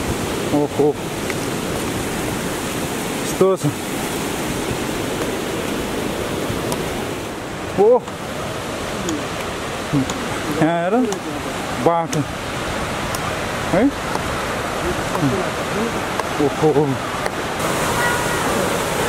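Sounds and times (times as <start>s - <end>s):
mountain stream rushing: 0.0s - 19.0s.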